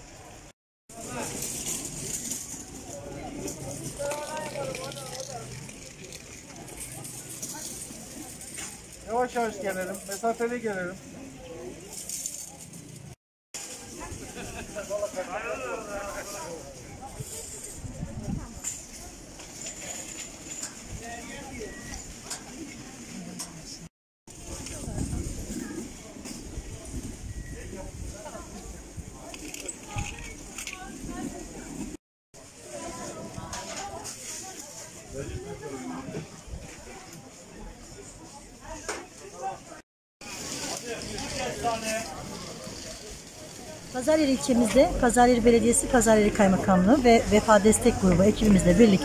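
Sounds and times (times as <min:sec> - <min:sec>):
street murmur: 0:00.0 - 0:49.0
people talking: 0:02.3 - 0:11.9, 0:32.6 - 0:49.0.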